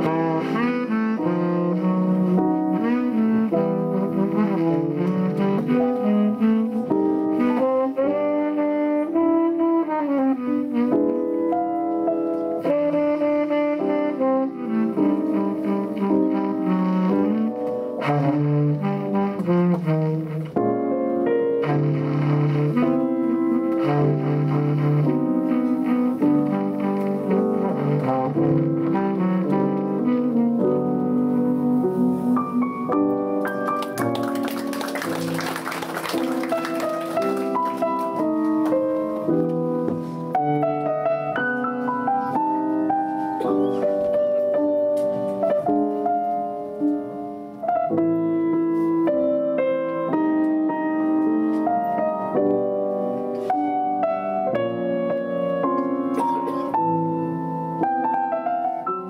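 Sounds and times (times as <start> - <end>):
piano accompaniment: 0.0 - 59.0
tenor saxophone jazz melody: 0.0 - 59.0.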